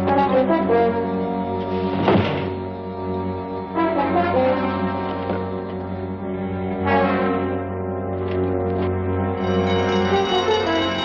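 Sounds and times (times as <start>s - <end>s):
dramatic orchestral music: 0.0s - 11.0s
sudden thump: 2.0s - 2.6s.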